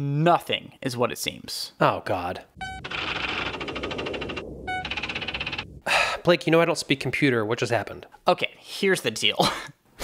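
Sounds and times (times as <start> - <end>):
short electronic beep: 2.6 - 3.4.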